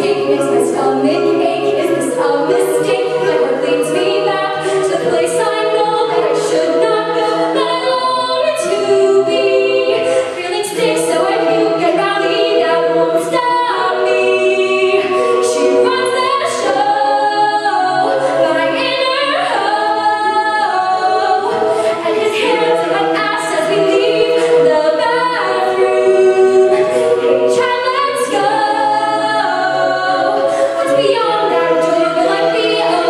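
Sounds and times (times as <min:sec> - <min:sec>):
backing vocals in close chords: 0:00.0 - 0:33.0.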